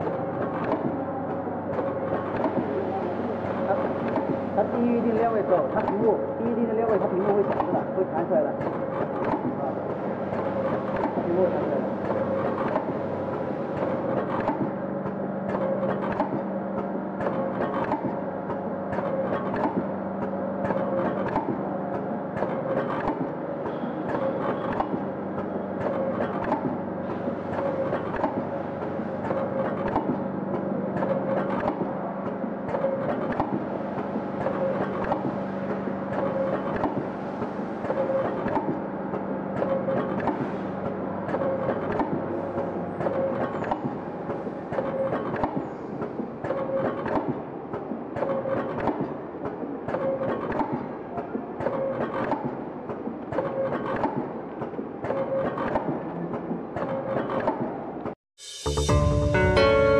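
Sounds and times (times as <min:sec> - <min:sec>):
machine clacking: 0:00.0 - 0:58.2.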